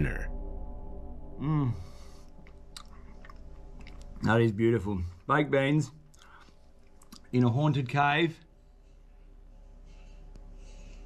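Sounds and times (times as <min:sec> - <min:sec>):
faint steady hum: 0:00.0 - 0:11.0
person chewing food: 0:02.3 - 0:04.2, 0:06.0 - 0:07.3
faint mouth clicks: 0:02.4 - 0:04.2, 0:06.1 - 0:07.3.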